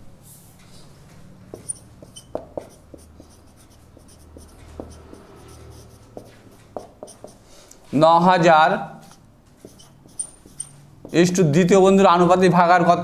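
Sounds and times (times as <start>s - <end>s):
marker pen writing on whiteboard: 1.2s - 7.5s, 9.0s - 11.7s.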